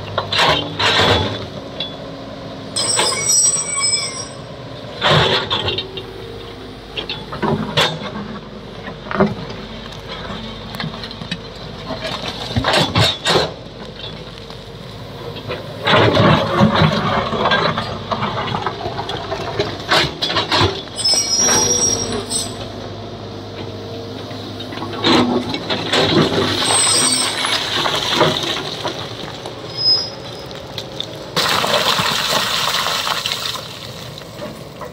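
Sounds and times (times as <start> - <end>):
excavator diesel engine: 0.0 - 34.9
high metallic squeals: 2.8 - 4.6, 20.9 - 22.8, 26.6 - 27.6, 29.7 - 30.5
bucket scraping rocky slope: 25.1 - 30.6.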